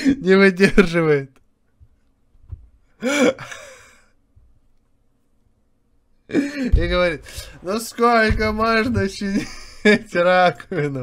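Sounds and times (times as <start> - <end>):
faint low thump: 2.4 - 2.8, 6.7 - 7.6, 8.2 - 9.4.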